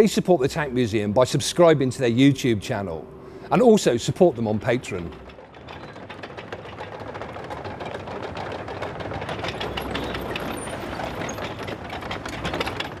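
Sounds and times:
tank diesel engine rumbling: 0.0 - 13.0
steel track links clattering: 3.5 - 13.0.

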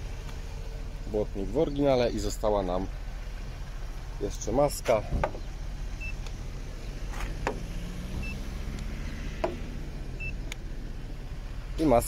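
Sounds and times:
gauge beeping: 8.2 - 8.5, 10.2 - 10.5.

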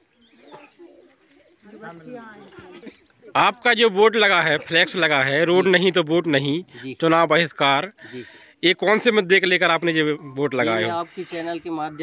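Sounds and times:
man speaking: 3.4 - 12.0.

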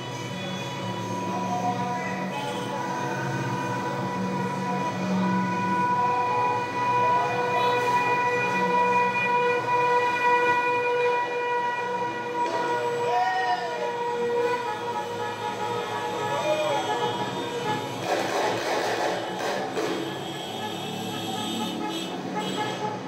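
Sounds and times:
vehicle horns blaring: 0.0 - 13.1, 13.8 - 23.0.

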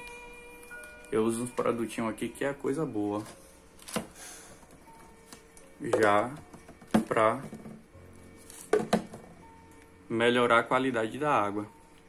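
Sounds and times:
plastic bottles knocking on shelf: 5.9 - 7.8, 8.7 - 9.3.

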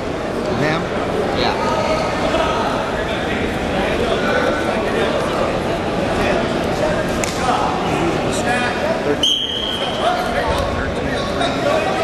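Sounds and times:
voices echoing in a gym: 0.0 - 12.0
referee's whistle blast: 9.2 - 10.0.

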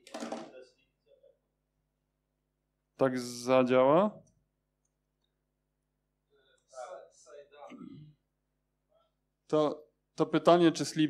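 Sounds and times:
man speaking: 3.0 - 4.2, 6.7 - 8.1, 9.5 - 11.0.

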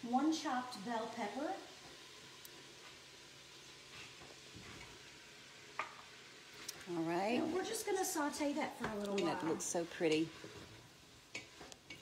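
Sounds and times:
sausage sizzling in a pot: 0.0 - 12.0.

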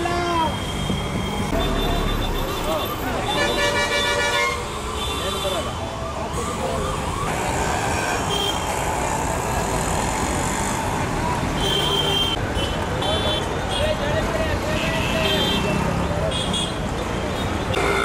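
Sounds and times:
crowd chatter: 0.0 - 18.0
traffic: 0.0 - 18.0.

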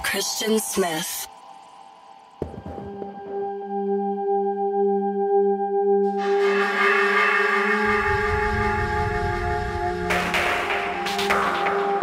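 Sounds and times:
sustained synthesizer chord: 2.9 - 12.0.

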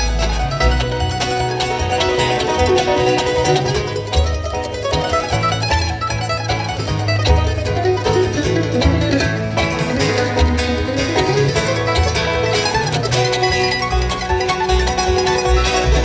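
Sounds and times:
banjo: 0.0 - 16.0
rapid mandolin picking: 0.0 - 16.0
upright bass notes: 0.0 - 16.0.

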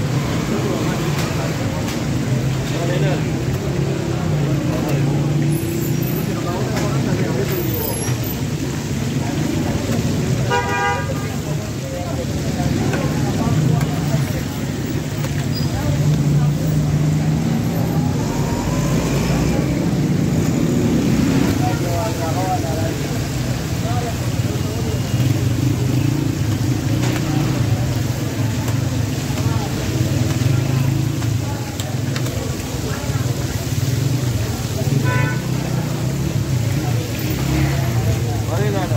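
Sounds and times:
faint voices: 0.0 - 38.9
low street hum: 0.0 - 38.9
vehicle horn: 10.5 - 11.2, 35.0 - 35.5
food sizzling in hot fat: 11.6 - 38.9.

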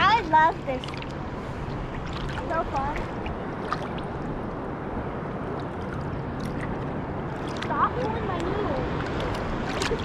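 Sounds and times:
sea water lapping and sloshing: 0.0 - 10.0
small splashes and drips: 0.7 - 1.2, 1.8 - 4.3, 5.4 - 10.0.

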